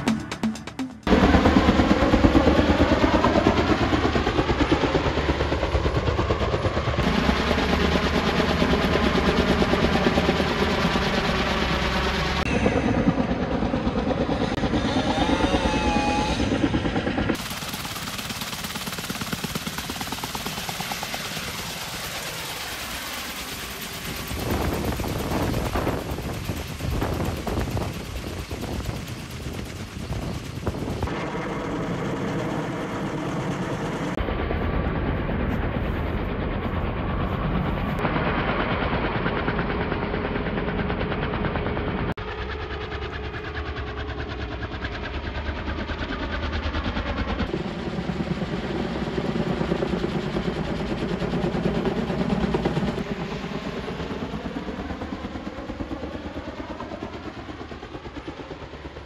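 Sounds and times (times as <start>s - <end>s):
helicopter rotor chop: 0.0s - 59.0s.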